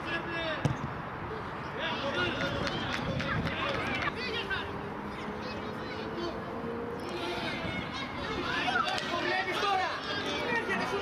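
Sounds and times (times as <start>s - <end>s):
children shouting: 2.7s - 11.0s.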